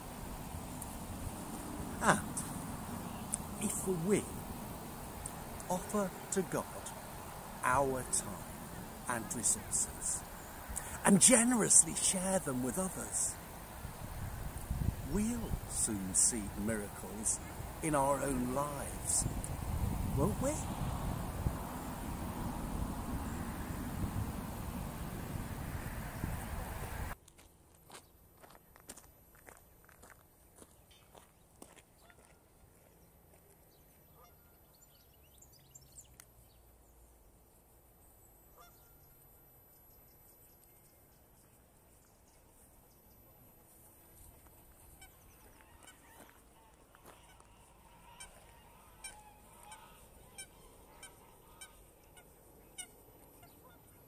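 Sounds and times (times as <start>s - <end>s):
geese honking: 34.1s - 34.6s, 38.6s - 38.9s, 44.9s - 54.0s.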